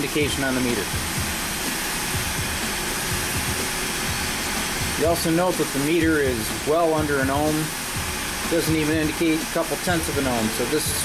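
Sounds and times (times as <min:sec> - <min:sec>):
heat gun blowing air: 0:00.0 - 0:11.0.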